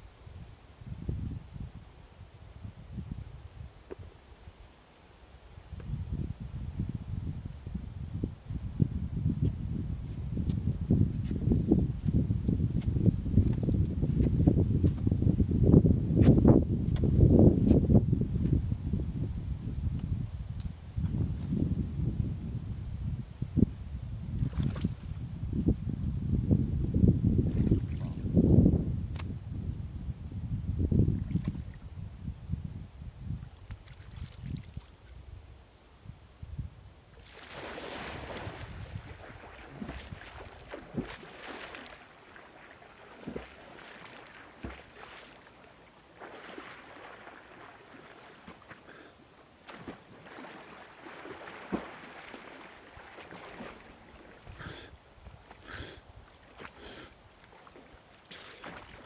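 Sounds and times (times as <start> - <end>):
wind on microphone: 0.0 - 4.6, 5.5 - 59.0
water splashing: 37.2 - 55.7, 56.3 - 59.0.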